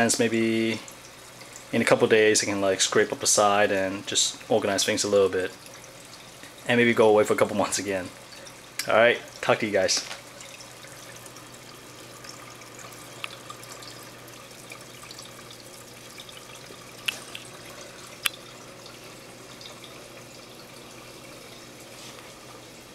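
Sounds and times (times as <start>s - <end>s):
aquarium water trickling: 0.0s - 22.9s.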